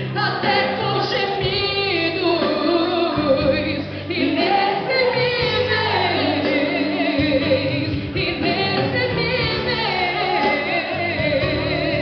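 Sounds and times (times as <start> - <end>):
band accompaniment: 0.0 - 12.0
other voices singing: 0.0 - 12.0
woman singing with vibrato: 0.0 - 12.0.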